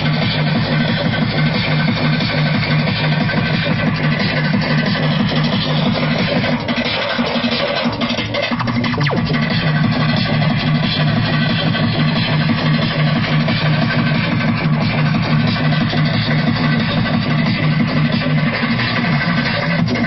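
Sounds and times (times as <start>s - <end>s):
electronic tekno music: 0.0s - 20.0s.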